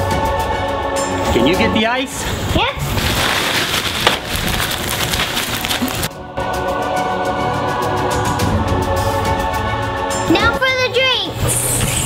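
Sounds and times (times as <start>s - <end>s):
ice crunching in bags: 2.8s - 6.1s
plastic rustling: 2.8s - 6.1s.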